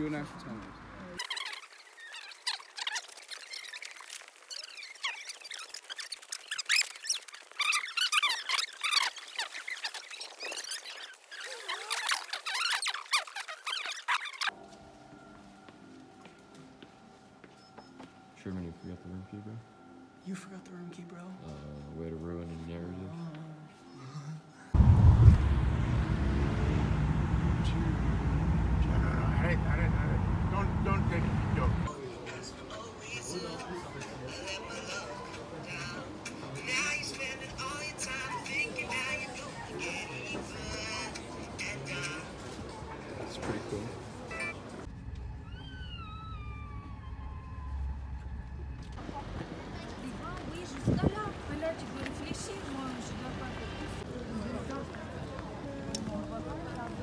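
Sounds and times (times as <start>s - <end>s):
high-pitched squeaky chatter: 1.2s - 14.5s, 44.2s - 47.8s
car road and engine rumble: 24.7s - 31.9s
faint voices: 27.4s - 57.0s.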